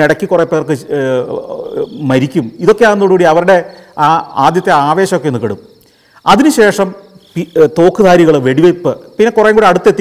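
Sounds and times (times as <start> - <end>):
cricket trilling: 0.0 - 10.0
man speaking: 0.0 - 10.0.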